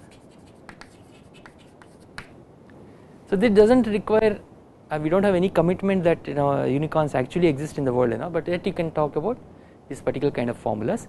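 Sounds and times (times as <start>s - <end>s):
chalk scratching on blackboard: 0.0s - 2.3s
chalk tapping: 0.0s - 2.4s.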